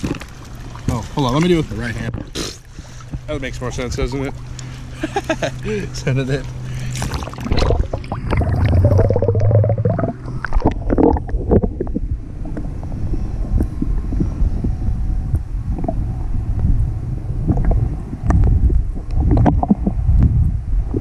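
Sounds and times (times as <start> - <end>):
water sloshing: 0.0 - 14.4
muffled underwater rumble: 0.0 - 21.0.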